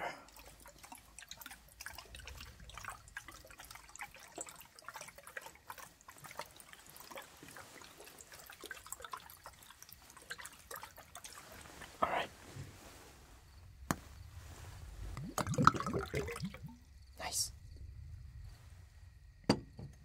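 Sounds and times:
liquid sloshing in glass flask: 0.2 - 13.1, 14.4 - 16.9.

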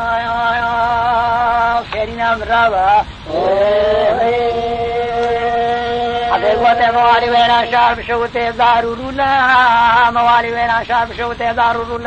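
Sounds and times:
man chanting a sung story: 0.0 - 12.0.

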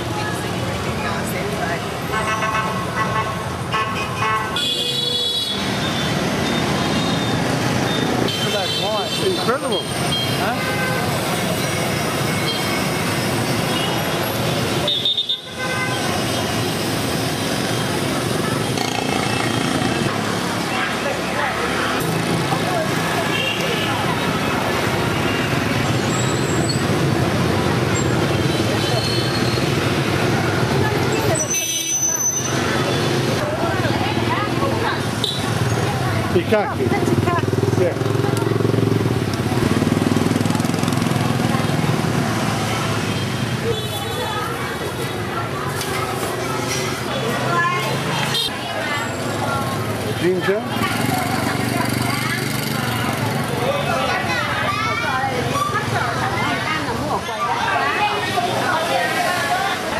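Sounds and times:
voices in the street: 0.0 - 59.9
car horns tooting: 2.1 - 11.8, 14.8 - 16.2, 31.4 - 32.6
motorbike and car engines running: 18.4 - 23.2, 35.5 - 43.0, 49.4 - 54.3.

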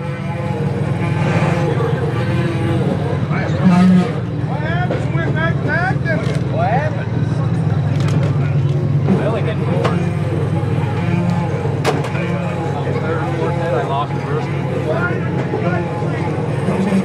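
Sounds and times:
car engine low rumble: 0.0 - 17.0.

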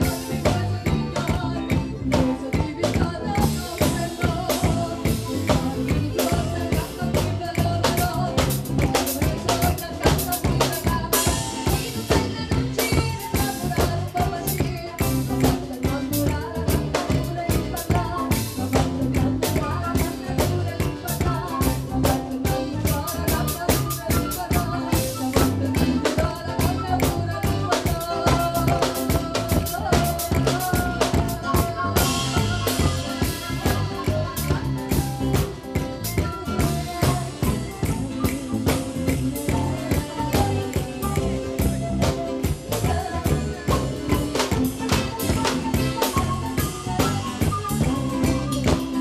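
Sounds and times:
accordion: 0.0 - 49.0
guitar: 0.0 - 49.0
percussion beat: 0.0 - 49.0
woman singing: 0.0 - 49.0.

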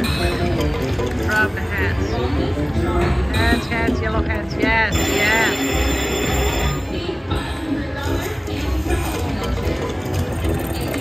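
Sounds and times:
slot machine music: 0.0 - 7.4
casino floor din: 3.4 - 6.9
slot machine chimes: 4.9 - 7.1.

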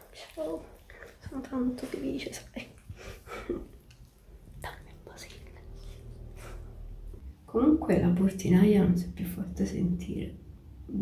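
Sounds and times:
faint room hum: 0.0 - 11.0
woman whispering: 4.5 - 6.3.

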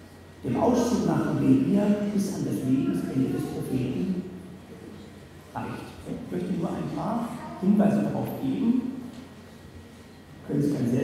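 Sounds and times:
man lecturing into microphone: 0.4 - 4.6, 5.5 - 9.1, 10.4 - 11.0.

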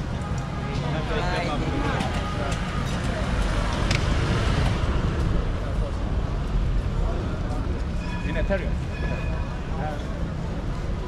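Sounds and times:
low rumble of traffic: 0.0 - 11.0
voices of passers-by: 0.0 - 11.0.

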